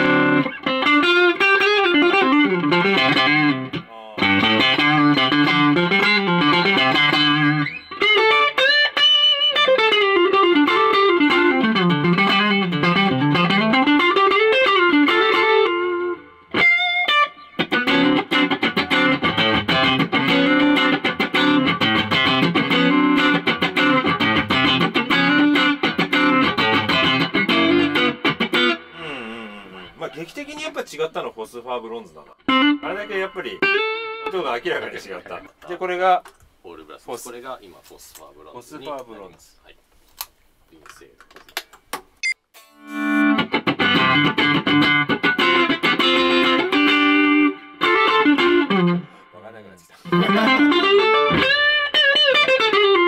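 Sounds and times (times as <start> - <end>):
electric guitar through amplifier: 0.0 - 30.1, 42.6 - 49.3, 50.0 - 53.0.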